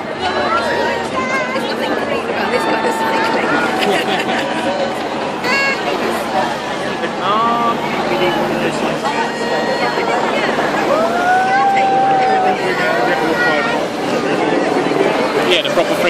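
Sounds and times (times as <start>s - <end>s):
cars driving past: 0.0s - 16.0s
crowd shouting and calling out: 0.0s - 16.0s
long drawn-out shout: 0.1s - 6.8s, 8.9s - 14.1s.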